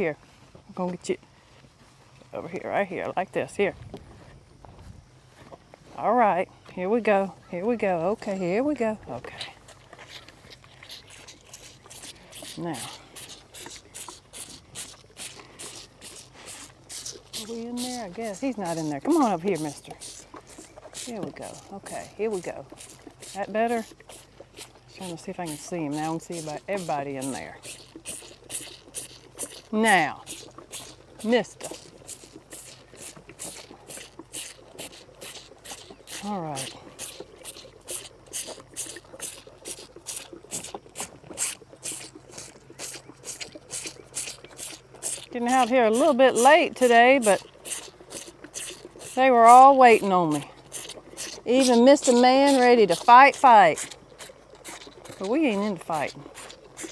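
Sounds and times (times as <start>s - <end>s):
cattle feeding wet crunching: 0.0s - 56.9s
calf slurping from bottle: 8.4s - 56.9s.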